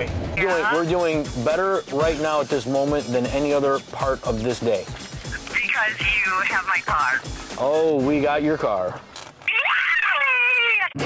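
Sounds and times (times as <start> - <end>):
high-pitched drawn-out cry: 9.5 - 11.0.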